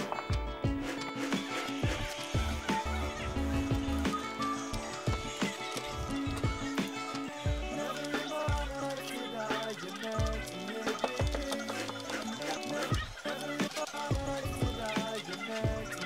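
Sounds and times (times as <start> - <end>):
instrumental background music: 0.0 - 16.0.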